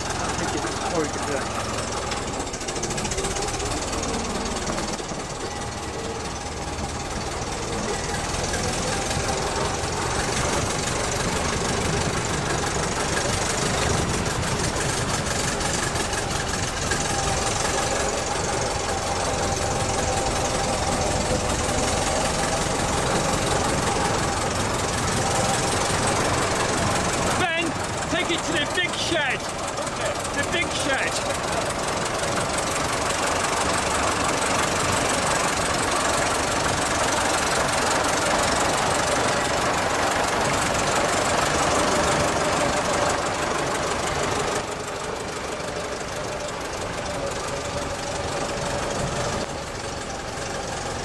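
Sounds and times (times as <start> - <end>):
fire engine engine running: 0.0 - 51.0.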